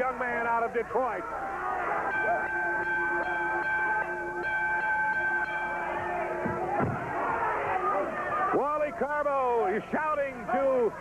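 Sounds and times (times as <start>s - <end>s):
crowd shouting faintly: 0.8s - 11.0s
ring bell ringing: 2.1s - 6.6s.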